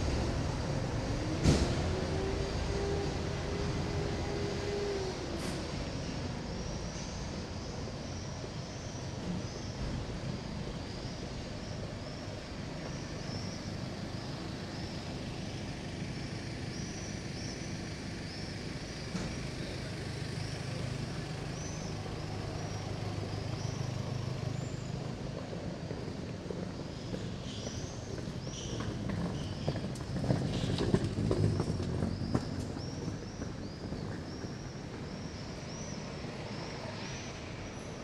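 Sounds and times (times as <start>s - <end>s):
street background noise: 0.0s - 38.0s
vehicle engine rumble: 0.0s - 38.0s.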